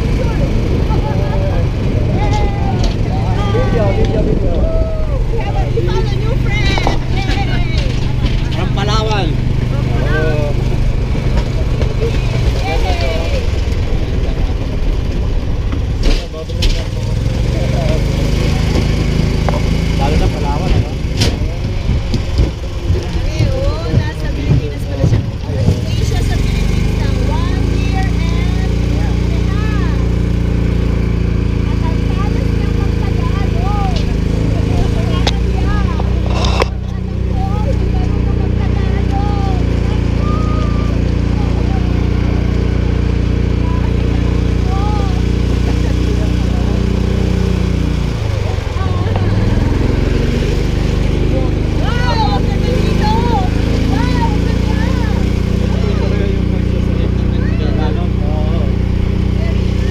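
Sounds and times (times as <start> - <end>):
indistinct voices: 0.0 - 59.9
shuttle cart motor running: 0.0 - 59.9.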